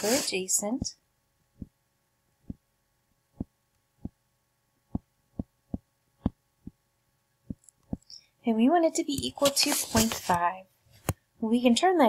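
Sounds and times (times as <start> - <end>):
stylus tapping on screen: 3.4 - 4.2, 4.9 - 6.8.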